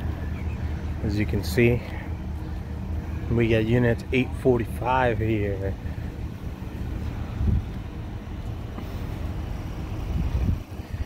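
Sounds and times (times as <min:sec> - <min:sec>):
vehicles idling: 0:00.0 - 0:11.0
wind buffeting microphone: 0:05.8 - 0:11.0.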